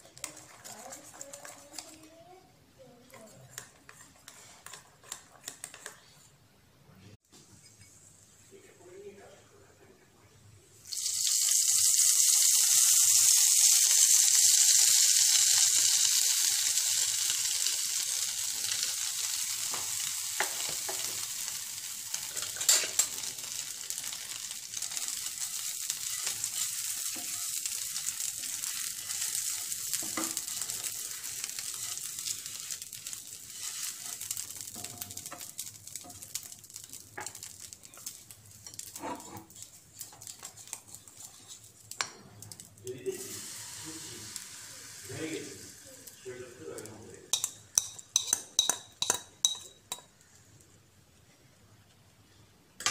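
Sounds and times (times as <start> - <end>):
spatula spreading butter: 0.0 - 2.1, 3.0 - 6.3, 24.1 - 42.6
butter sizzling in frying pan: 10.8 - 50.5.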